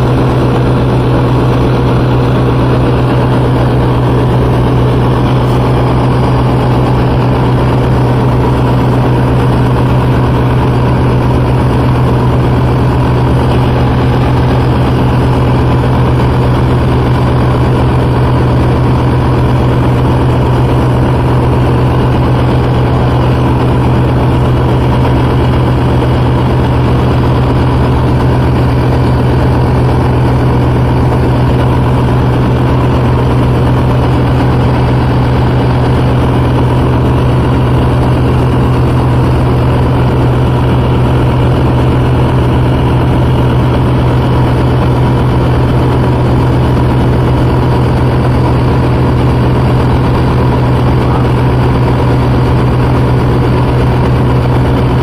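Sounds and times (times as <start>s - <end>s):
diesel engine low hum: 0.0s - 55.0s.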